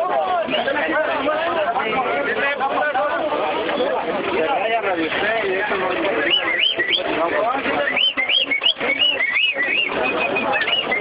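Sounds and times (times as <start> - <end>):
birds chirping: 5.8 - 11.0.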